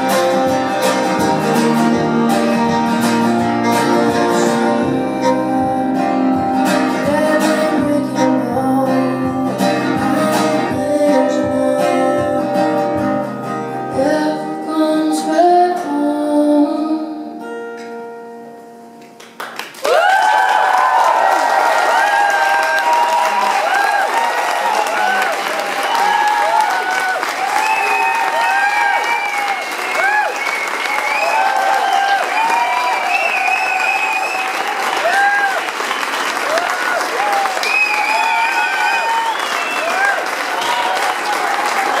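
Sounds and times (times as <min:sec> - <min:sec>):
audience applauding: 0:19.2 - 0:42.0
audience cheering: 0:19.8 - 0:42.0.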